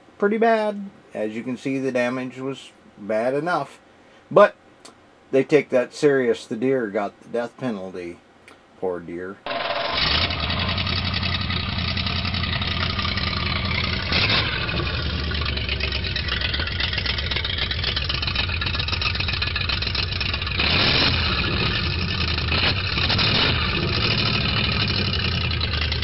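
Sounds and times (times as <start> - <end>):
louder engine bursts: 9.4 - 26.0
engine idling: 9.5 - 26.0.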